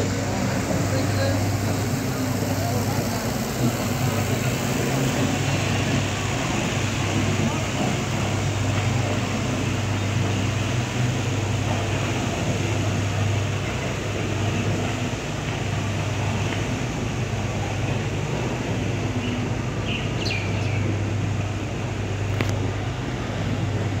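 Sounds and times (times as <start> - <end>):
outboard motor humming: 0.0 - 24.0
water noise: 0.0 - 24.0.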